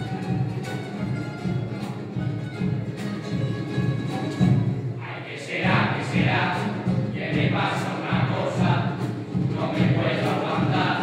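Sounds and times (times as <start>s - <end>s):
strummed acoustic guitars: 0.0s - 11.0s
male chorus singing: 5.0s - 11.0s.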